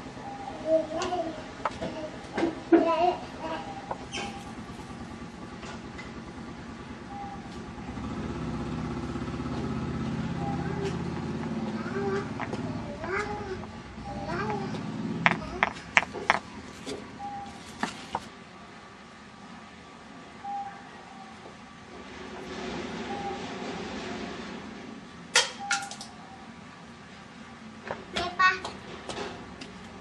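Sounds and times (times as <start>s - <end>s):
sharp taps: 14.5s - 17.0s.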